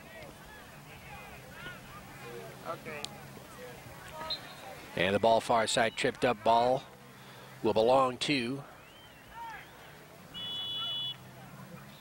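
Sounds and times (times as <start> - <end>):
referee's whistle blast: 10.4 - 11.2.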